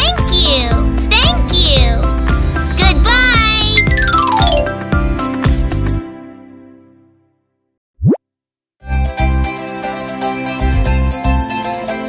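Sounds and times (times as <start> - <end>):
music: 0.0 - 7.7, 8.8 - 12.0
cartoon upward pitch glide: 3.8 - 4.8, 8.0 - 8.2.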